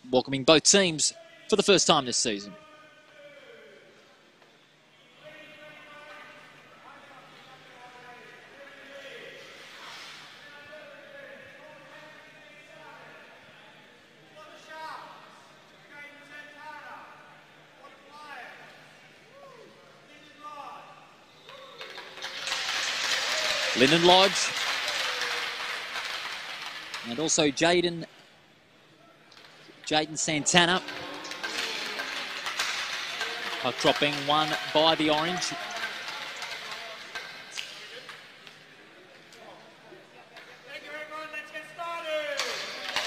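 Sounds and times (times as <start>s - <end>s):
man speaking over public address: 0.0s - 3.6s, 23.8s - 24.6s, 27.0s - 28.1s, 29.8s - 31.4s, 33.2s - 37.3s.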